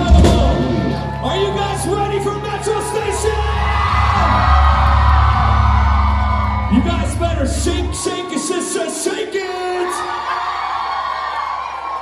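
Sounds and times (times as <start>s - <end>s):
heavy bass: 0.0s - 8.0s
electric guitar: 3.4s - 7.8s.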